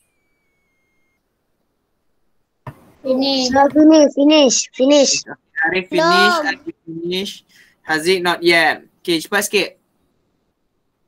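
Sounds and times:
faint high tone: 5.6s - 6.8s.

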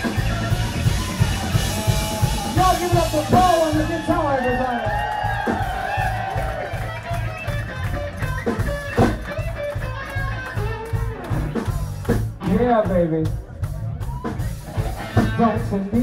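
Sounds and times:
bass guitar: 0.0s - 16.0s
drum kit: 0.0s - 16.0s
electric guitar: 0.0s - 16.0s.

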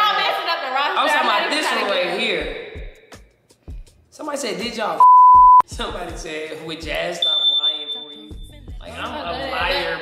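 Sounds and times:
high-pitched electronic beep: 5.0s - 5.6s, 7.2s - 8.4s.

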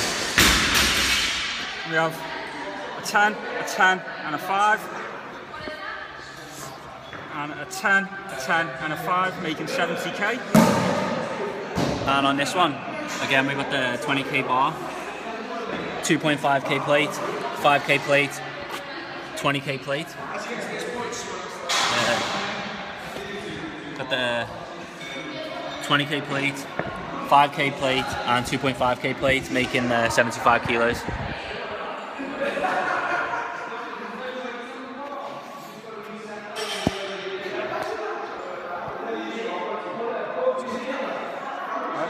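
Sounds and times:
indistinct chatter echoing: 0.0s - 42.0s.

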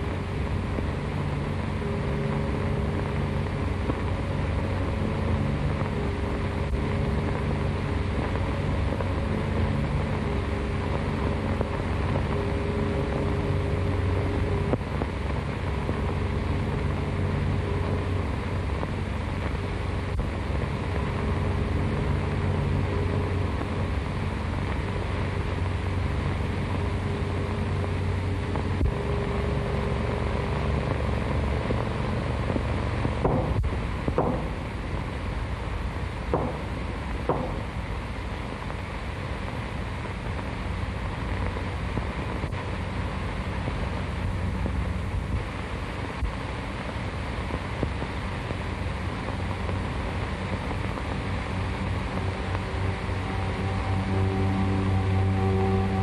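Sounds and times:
low droning film score chords: 0.0s - 56.0s
old soundtrack hiss and rumble: 0.0s - 56.0s.

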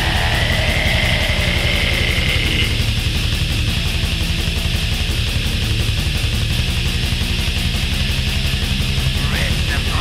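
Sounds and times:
distorted guitars: 0.0s - 10.0s
rapid kick drum strokes: 0.0s - 10.0s.

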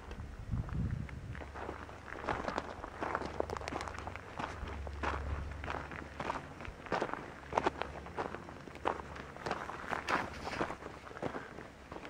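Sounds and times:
low steady rumble: 0.0s - 12.0s
footsteps crunching on gravel: 0.5s - 12.0s.

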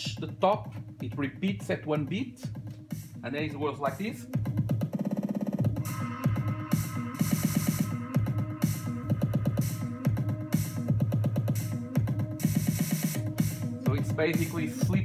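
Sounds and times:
electronic dance music: 0.0s - 15.0s
kick drum: 0.0s - 15.0s.

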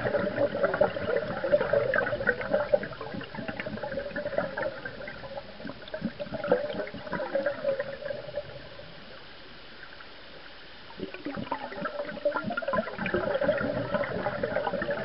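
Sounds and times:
underwater bubbles gurgling: 0.0s - 15.0s.

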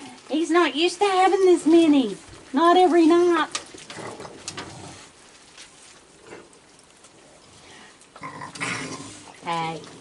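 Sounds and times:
raccoons crunching food: 0.0s - 10.0s.

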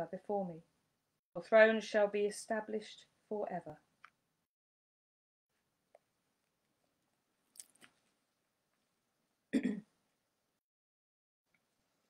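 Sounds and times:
woman clearing her throat: 9.5s - 9.9s.

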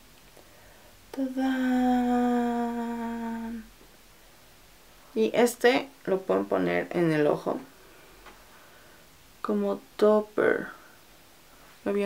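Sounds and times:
woman humming a held note: 1.2s - 3.7s.

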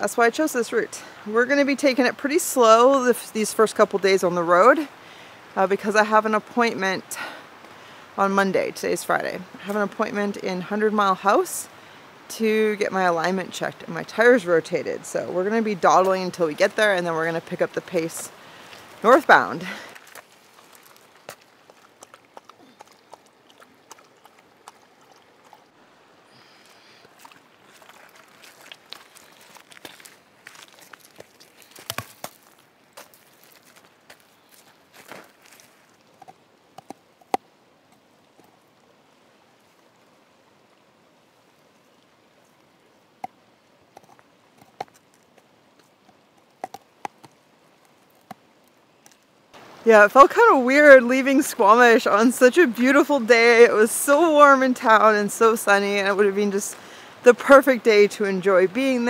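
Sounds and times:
pebbles crunching under dog's paws: 19.8s - 24.4s, 27.0s - 36.3s
stones knocking: 27.2s - 37.4s.

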